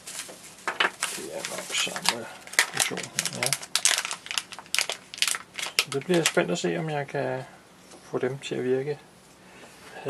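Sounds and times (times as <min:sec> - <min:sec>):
bubble wrap crinkling: 0:00.0 - 0:06.6
foil bag rustling: 0:00.0 - 0:06.6.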